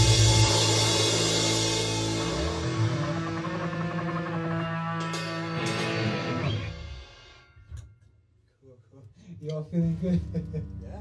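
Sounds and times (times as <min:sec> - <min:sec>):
rock band ringing: 0:00.0 - 0:07.7.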